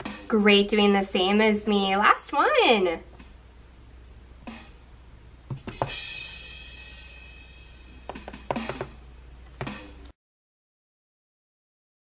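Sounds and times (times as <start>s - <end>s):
drum hits: 5.5s - 6.9s
crash cymbal ringing: 6.0s - 8.0s.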